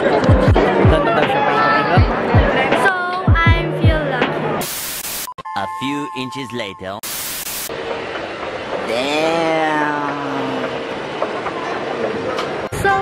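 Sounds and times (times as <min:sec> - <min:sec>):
music: 0:00.0 - 0:04.6, 0:05.4 - 0:07.0
loud burst of static hiss: 0:04.6 - 0:05.3, 0:07.0 - 0:07.7
narrator speaking: 0:05.5 - 0:07.0
city ambience: 0:05.5 - 0:13.0.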